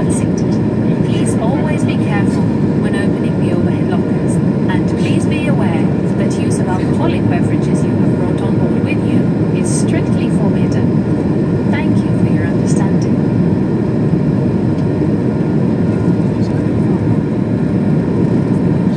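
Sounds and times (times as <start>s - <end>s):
airplane engine drone: 0.0s - 18.9s.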